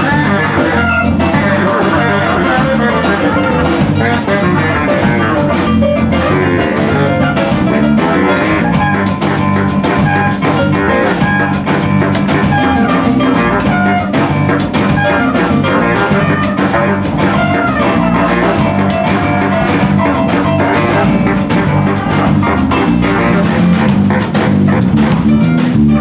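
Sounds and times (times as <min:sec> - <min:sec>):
baritone saxophone: 0:00.0 - 0:26.0
drum kit: 0:00.0 - 0:26.0
guitar: 0:00.0 - 0:26.0.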